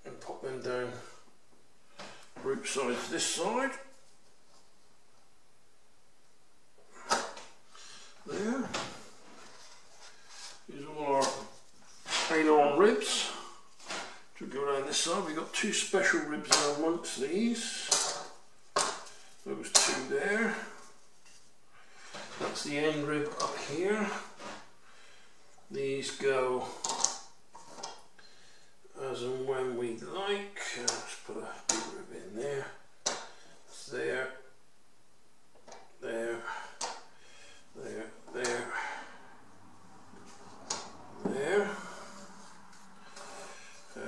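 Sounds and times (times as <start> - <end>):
man talking: 0.0 - 1.2, 2.4 - 4.0, 8.2 - 9.1, 10.6 - 13.6, 14.4 - 18.3, 19.4 - 20.9, 22.3 - 24.5, 25.7 - 27.0, 28.9 - 32.9, 33.7 - 34.6, 36.0 - 36.9, 37.7 - 39.2, 41.2 - 42.2.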